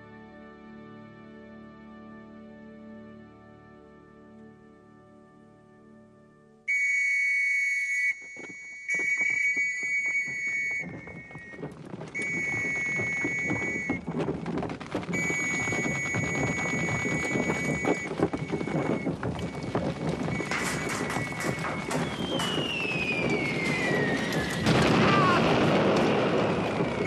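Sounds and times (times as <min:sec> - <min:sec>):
shrill whistle blasts: 0:06.7 - 0:11.6, 0:12.2 - 0:14.0, 0:20.3 - 0:24.8
noisy din of movement: 0:08.9 - 0:27.0.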